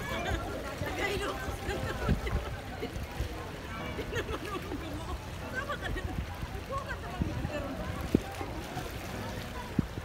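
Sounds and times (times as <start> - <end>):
distant people chattering: 0.0 - 10.0.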